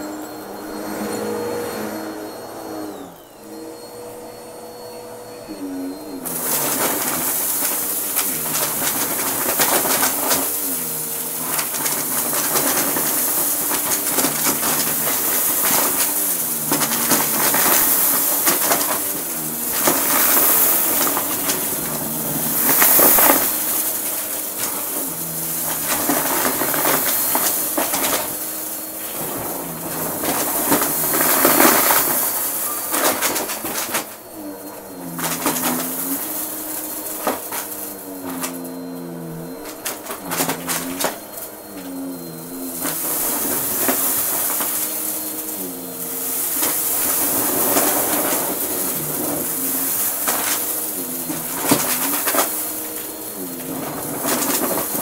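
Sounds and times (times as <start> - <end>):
vacuum cleaner motor hum: 0.0 - 55.0
vacuum sucking up gritty debris: 0.0 - 55.0.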